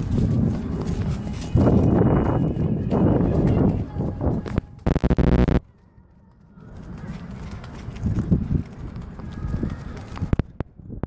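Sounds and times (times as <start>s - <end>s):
running footsteps: 0.0s - 10.9s.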